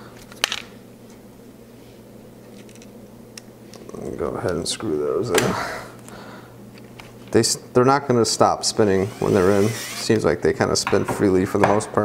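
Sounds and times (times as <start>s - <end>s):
steady low hum: 0.0s - 10.8s.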